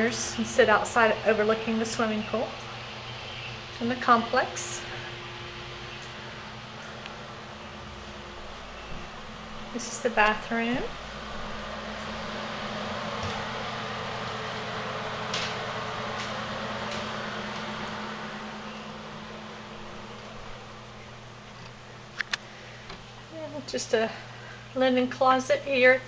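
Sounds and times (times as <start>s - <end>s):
ventilation fan humming: 0.0s - 26.0s.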